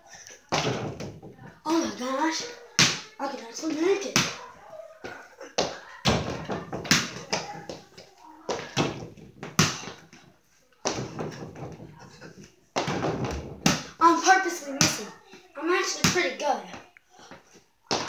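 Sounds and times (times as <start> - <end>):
small basketball knocks and thuds: 0.5 - 1.6, 10.8 - 11.9, 12.8 - 13.9.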